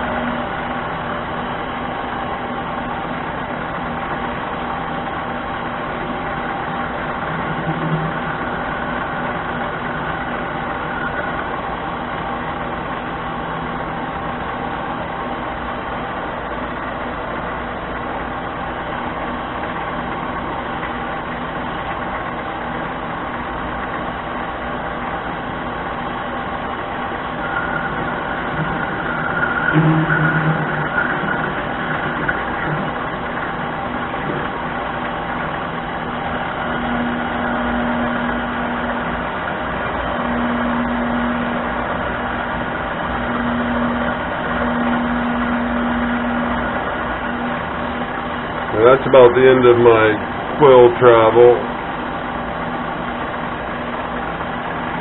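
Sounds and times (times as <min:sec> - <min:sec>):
lathe motor whining: 0:00.0 - 0:55.0
low hum: 0:00.0 - 0:55.0.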